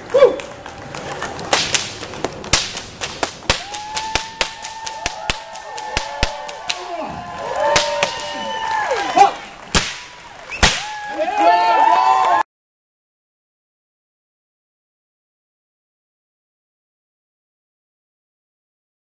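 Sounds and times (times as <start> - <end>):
whip cracking: 1.5 - 7.0, 7.7 - 8.4, 9.7 - 11.1.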